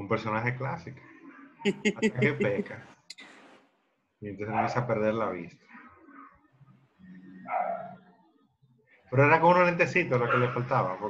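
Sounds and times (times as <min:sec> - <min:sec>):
voices: 0:00.0 - 0:03.3, 0:04.2 - 0:06.4, 0:07.0 - 0:08.0, 0:09.1 - 0:11.0
dog bark: 0:04.5 - 0:04.9, 0:07.5 - 0:08.0, 0:10.3 - 0:10.6.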